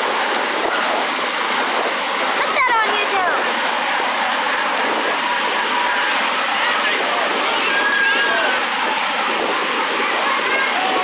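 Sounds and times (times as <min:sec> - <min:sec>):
crowd voices: 0:00.0 - 0:11.0
monster truck engines roaring: 0:00.0 - 0:11.0.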